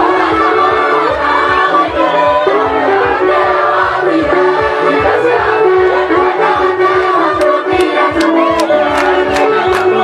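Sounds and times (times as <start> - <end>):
many voices singing: 0.0 - 10.0.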